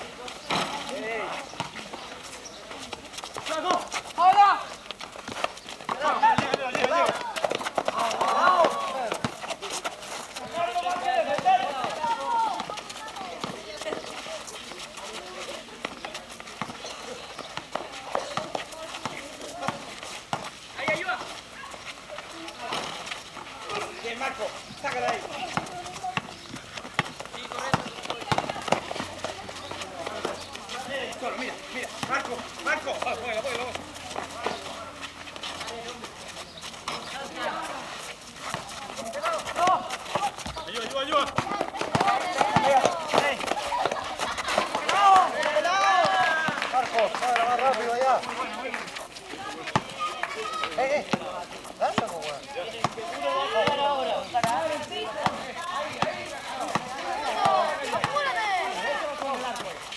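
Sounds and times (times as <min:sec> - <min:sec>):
running footsteps: 0:00.0 - 0:59.9
basketball bouncing: 0:05.2 - 0:09.4, 0:24.9 - 0:30.4, 0:31.9 - 0:34.5, 0:39.5 - 0:45.0, 0:52.8 - 0:58.3
players shouting: 0:05.8 - 0:14.4, 0:37.1 - 0:59.9.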